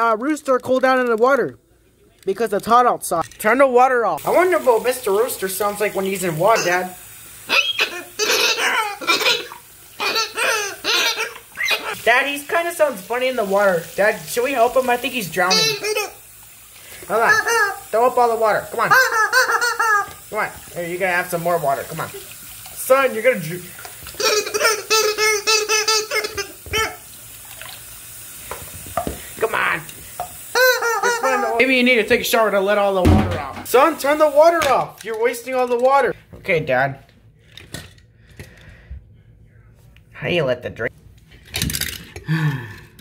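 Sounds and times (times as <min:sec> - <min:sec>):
running tap water: 0:02.3 - 0:36.2
rubber chicken squawking: 0:07.5 - 0:12.0, 0:17.2 - 0:17.9, 0:18.8 - 0:20.3, 0:24.2 - 0:27.0, 0:30.5 - 0:31.7
tap running into sink: 0:28.4 - 0:30.5, 0:33.0 - 0:33.8.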